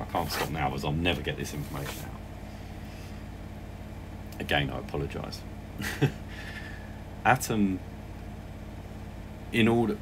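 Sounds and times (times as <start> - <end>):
washing machine humming: 0.0 - 10.0.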